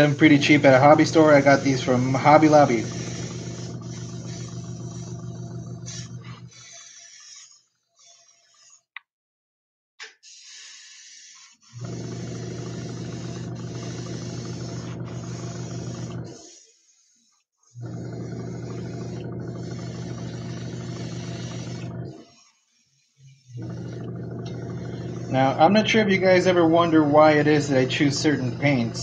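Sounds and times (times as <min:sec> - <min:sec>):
compressor humming: 0:00.0 - 0:07.4, 0:11.8 - 0:16.4, 0:17.8 - 0:22.2, 0:23.5 - 0:29.0
airbrush spraying air hiss: 0:00.4 - 0:05.1, 0:05.9 - 0:08.8, 0:10.2 - 0:11.8, 0:13.1 - 0:17.4, 0:20.8 - 0:23.6.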